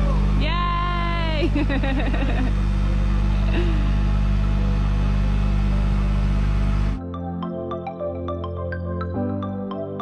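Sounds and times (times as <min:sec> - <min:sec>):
engine low drone: 0:00.0 - 0:07.1
music with ringing mallet notes: 0:07.0 - 0:10.0.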